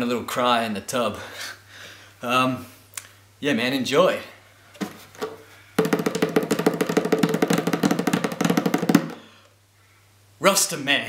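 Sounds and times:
bongos played rapidly: 5.2s - 9.3s.

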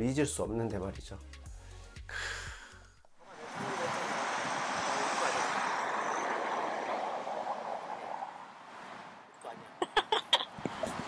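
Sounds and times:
vehicle passing on street: 3.2s - 9.8s.

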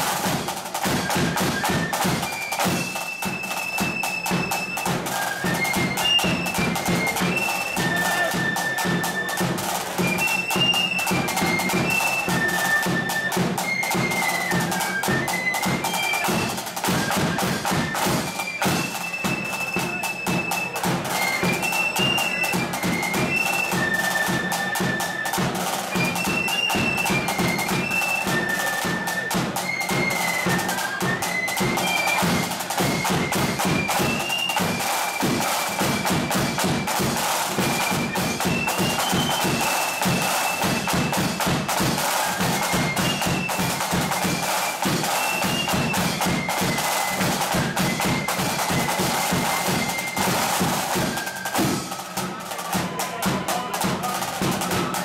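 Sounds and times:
flutes playing a march: 0.0s - 55.0s
snare drums: 0.0s - 55.0s.

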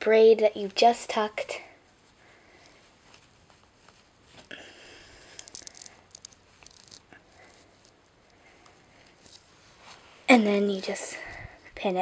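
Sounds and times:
fingers rustling doll hair: 0.5s - 12.0s.

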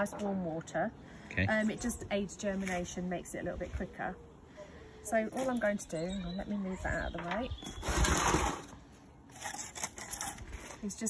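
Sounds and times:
plastic tray scraping on table: 7.6s - 8.8s.

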